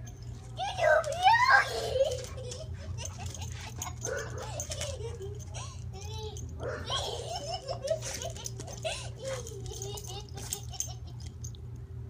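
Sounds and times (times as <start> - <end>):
steady low hum: 0.0 - 12.0
girl squealing excitedly: 0.6 - 2.2.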